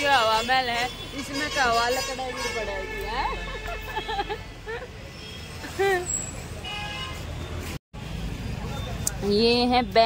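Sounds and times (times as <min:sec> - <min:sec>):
street traffic rumbling: 0:00.0 - 0:10.0
vehicle horn: 0:00.2 - 0:04.3, 0:06.6 - 0:07.4.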